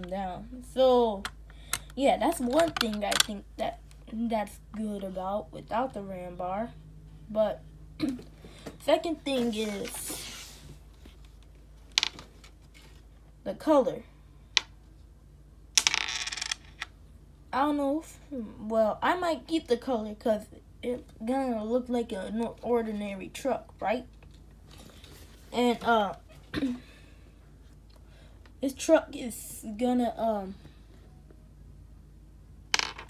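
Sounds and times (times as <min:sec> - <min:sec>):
faint low hum: 0:00.0 - 0:33.0.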